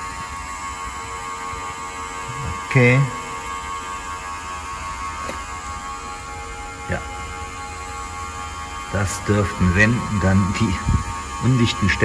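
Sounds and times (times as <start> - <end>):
smoke machine humming: 0.0 - 12.0.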